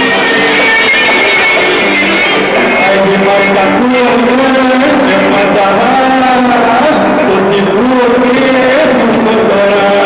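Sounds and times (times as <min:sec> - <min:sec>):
folk dance music: 0:00.0 - 0:10.0.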